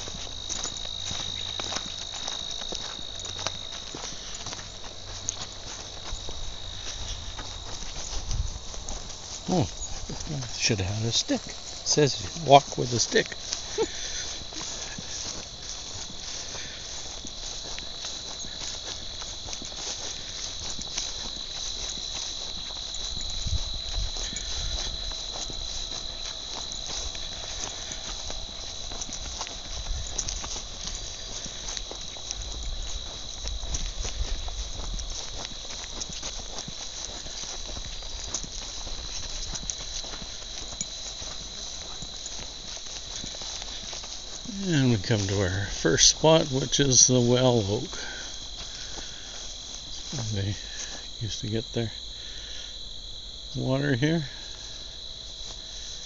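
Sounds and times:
crickets chirping: 0.0 - 56.0
footsteps on grassy path: 0.0 - 56.0.

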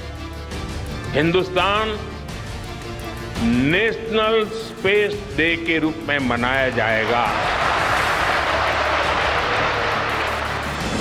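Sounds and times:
music: 0.0 - 11.0
people applauding and cheering: 6.4 - 11.0.

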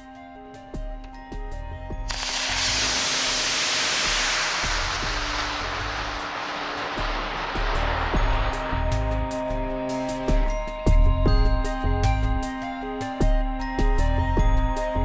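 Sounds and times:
background music with steady beat: 0.0 - 15.0
rocket motors rushing hiss: 2.1 - 9.4.

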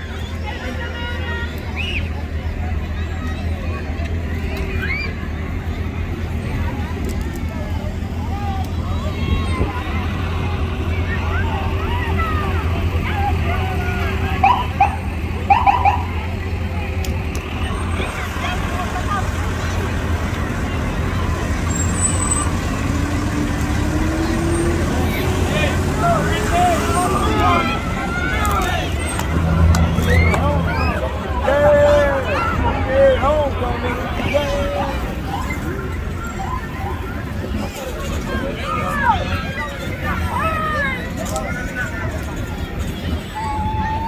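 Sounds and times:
crowd chatter: 0.0 - 44.0
fire engine passing: 0.0 - 44.0
vehicle engines rumbling: 0.0 - 44.0.

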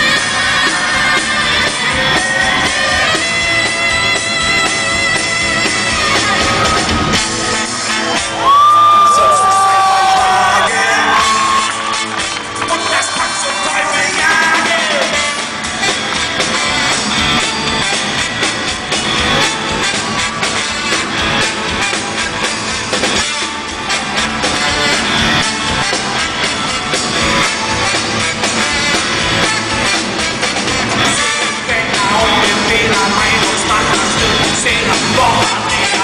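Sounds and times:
alto saxophone solo: 0.0 - 9.0, 15.0 - 32.0
live rock band playing: 0.0 - 36.0
audience cheering and whooping: 5.4 - 36.0.

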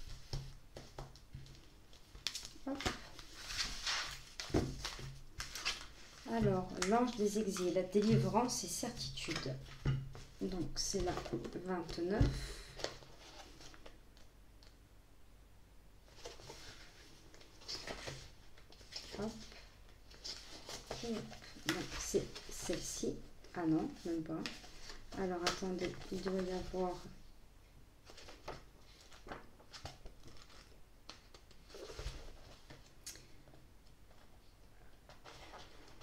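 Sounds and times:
book pages flipping: 0.0 - 8.6, 9.2 - 14.3, 16.1 - 27.1, 28.0 - 33.2, 35.1 - 36.0
cards rustling on cloth: 0.0 - 14.3, 16.1 - 27.2.

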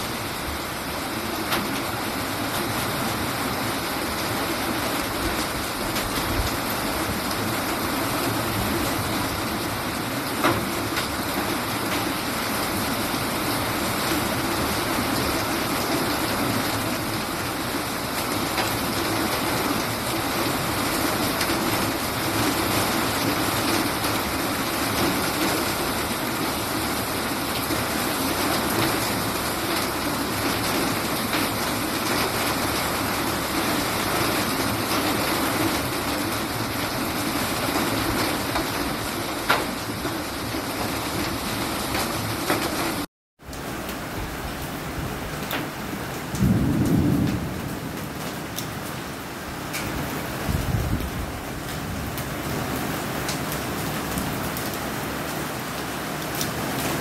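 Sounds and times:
heavy rain pouring: 0.0 - 57.0.

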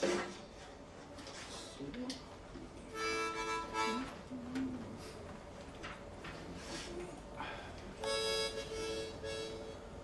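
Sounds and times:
harmonica chords: 2.9 - 4.2, 8.0 - 10.0.

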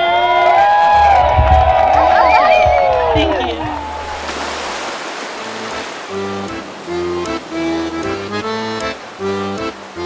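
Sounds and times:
waves washing on pebbles: 3.2 - 10.0
accordion music: 5.4 - 10.0.

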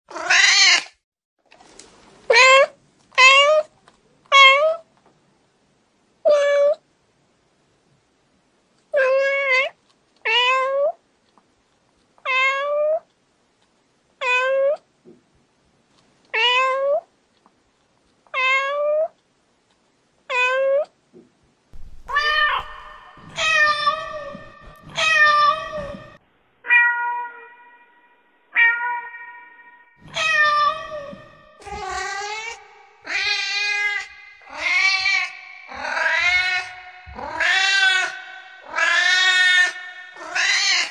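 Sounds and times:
cat meowing: 0.1 - 0.9, 21.8 - 27.8, 28.5 - 40.9.

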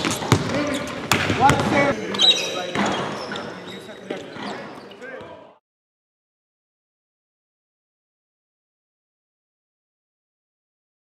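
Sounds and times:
basketball bouncing on hardwood: 0.0 - 1.9.

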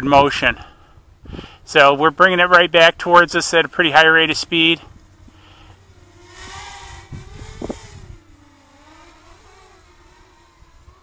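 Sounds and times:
quadcopter motors whining: 3.2 - 11.0.

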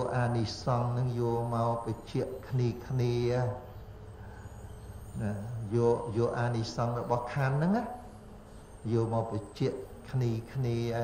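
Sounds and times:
man chanting: 0.0 - 3.7, 5.2 - 8.1, 8.8 - 11.0.

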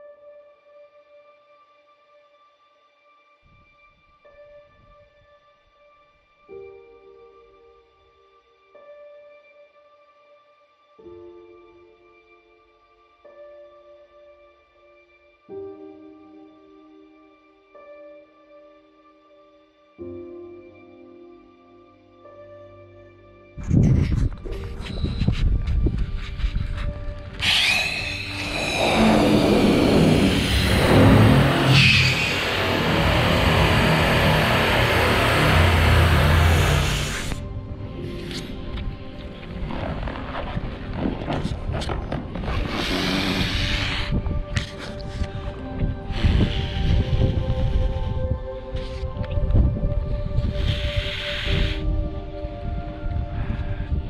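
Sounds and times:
background music: 0.0 - 54.0
gas hissing into balloon: 27.4 - 34.4, 35.3 - 37.4, 42.4 - 45.2, 46.0 - 48.3, 50.4 - 52.0.

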